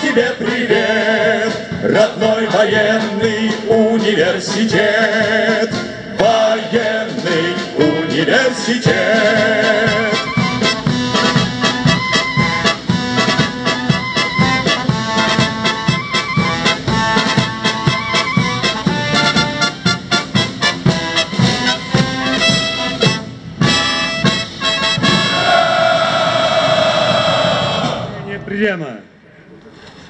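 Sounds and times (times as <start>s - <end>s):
military brass band playing: 0.0s - 28.5s.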